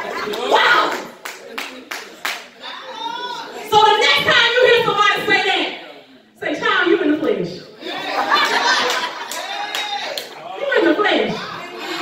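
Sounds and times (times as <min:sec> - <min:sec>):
hand claps: 0:00.9 - 0:02.5.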